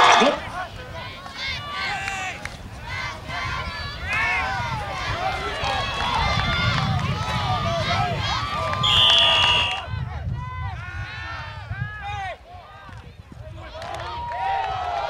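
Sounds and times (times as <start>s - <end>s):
people shouting: 0.0s - 10.0s
referee's whistle: 8.8s - 9.8s.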